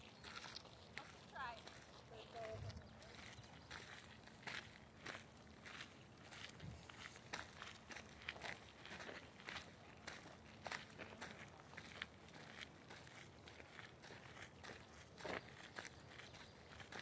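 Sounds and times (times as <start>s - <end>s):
footsteps on gravel: 0.0s - 17.0s.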